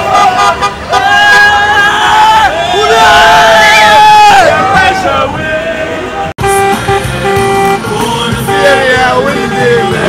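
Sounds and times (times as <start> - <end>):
car horns honking: 0.0 - 2.9, 4.3 - 10.0.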